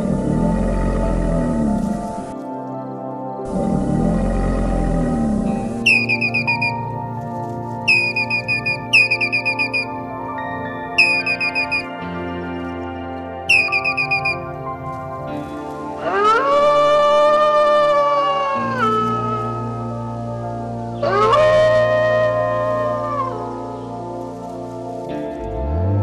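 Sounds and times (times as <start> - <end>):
soft background music: 0.0 - 26.0
wolf howling: 3.5 - 7.2, 15.8 - 19.9, 21.0 - 23.8
squirrel chattering: 7.9 - 9.9, 11.0 - 11.8.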